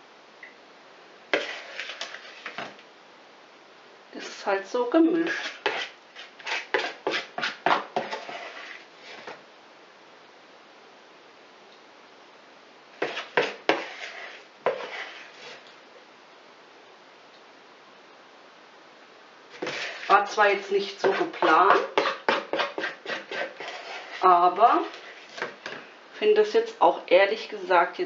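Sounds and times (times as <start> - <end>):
metal spoon scraping plastic bowl: 1.4 - 2.8, 5.2 - 9.4, 13.0 - 15.7, 19.5 - 25.9.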